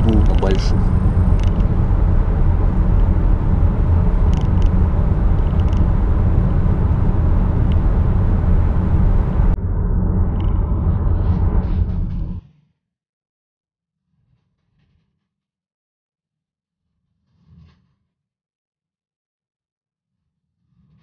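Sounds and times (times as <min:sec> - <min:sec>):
tyre hum in car cabin: 0:00.0 - 0:09.6.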